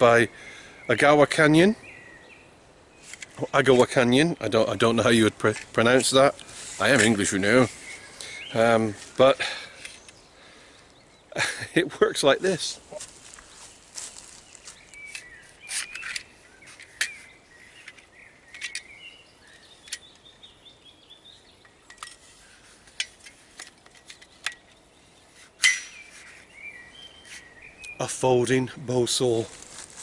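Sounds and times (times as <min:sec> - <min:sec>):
birds chirping faintly: 0:00.0 - 0:30.0.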